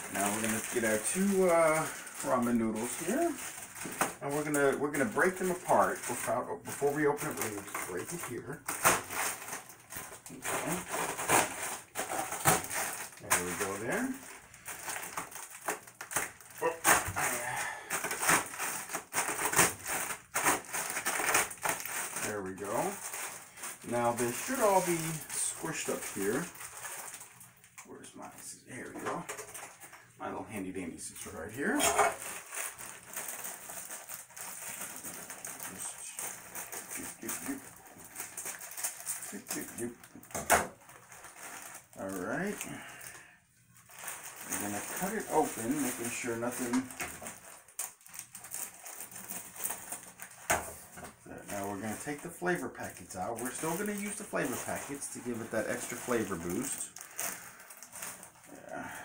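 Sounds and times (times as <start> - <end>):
plastic packet crinkling: 0.0 - 59.0.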